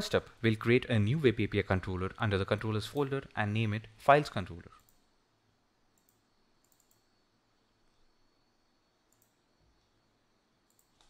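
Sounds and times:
computer mouse clicks: 0:04.8 - 0:05.0, 0:05.9 - 0:07.1, 0:09.1 - 0:09.4, 0:10.6 - 0:11.0.

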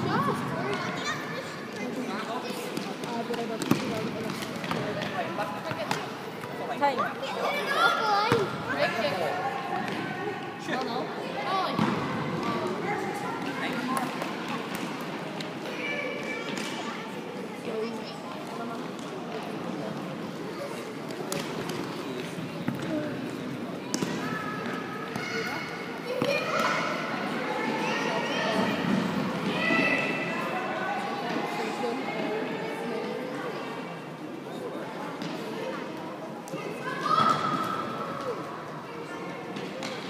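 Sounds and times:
ball kicked and bouncing on court: 0:02.6 - 0:06.7, 0:11.7 - 0:12.8, 0:23.9 - 0:25.3
people calling out in sports hall: 0:24.0 - 0:33.2, 0:34.8 - 0:40.0
children shouting in echoing hall: 0:36.6 - 0:38.5.

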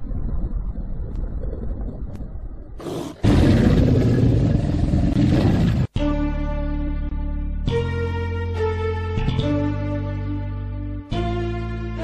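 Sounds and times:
low rumbling growl: 0:00.0 - 0:06.0
loud drawn-out animal roar: 0:02.8 - 0:05.9.

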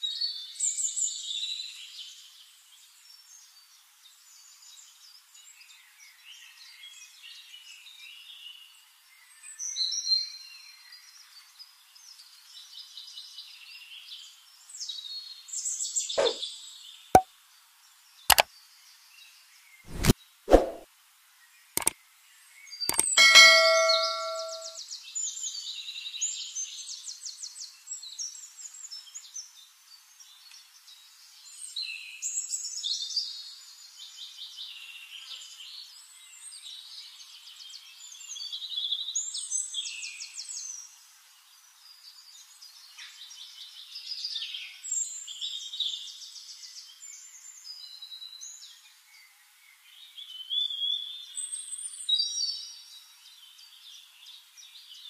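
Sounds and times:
bell-like ding: 0:22.9 - 0:24.8.

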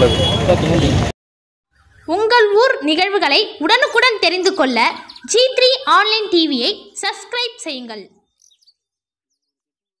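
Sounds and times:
faint bird chirps: 0:01.7 - 0:07.1, 0:08.1 - 0:09.6.

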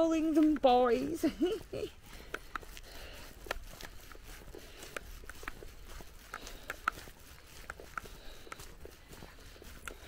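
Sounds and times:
footsteps on gravel and grass: 0:00.0 - 0:10.0.

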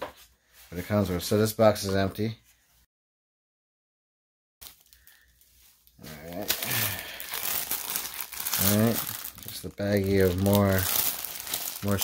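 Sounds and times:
plastic wrapping crinkling: 0:04.6 - 0:12.0.

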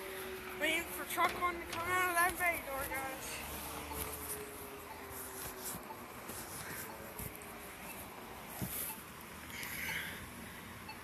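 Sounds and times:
vehicle passing: 0:00.0 - 0:10.9
street traffic: 0:00.0 - 0:11.0.

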